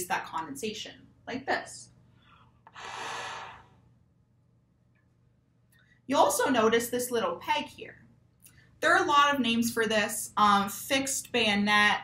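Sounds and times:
air rushing through trombone: 2.8s - 3.8s.

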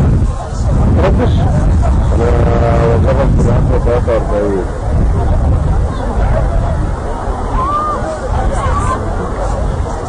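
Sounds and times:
babble of voices: 0.0s - 10.0s
low rumble: 0.0s - 10.0s
raised voices: 0.0s - 10.0s.

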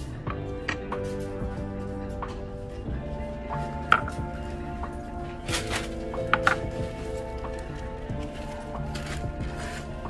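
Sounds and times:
background music: 0.0s - 10.0s
ceramic teacups knocking: 3.9s - 4.2s.

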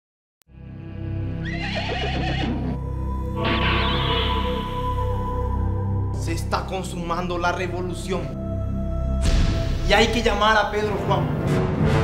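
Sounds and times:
horse whinnying: 1.4s - 2.8s, 3.4s - 4.8s.

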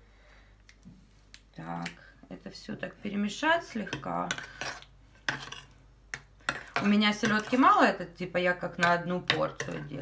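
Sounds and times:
spoon stirring in a ceramic bowl: 3.6s - 8.0s, 8.7s - 10.0s.

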